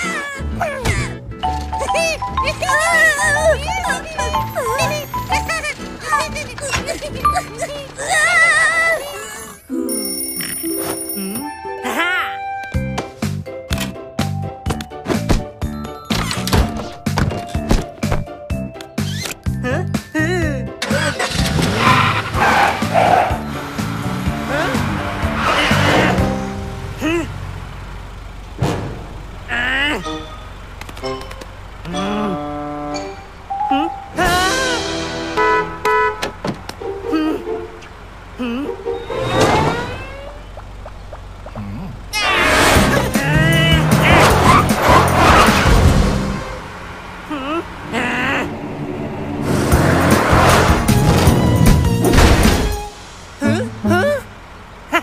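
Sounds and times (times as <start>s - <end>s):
small car engine starting and revving: 0.0s - 9.7s, 20.7s - 55.0s
background music: 9.7s - 27.0s, 29.9s - 36.2s
wavering cartoon sound effects: 31.9s - 35.1s, 38.4s - 45.6s, 47.3s - 49.8s, 53.4s - 55.0s.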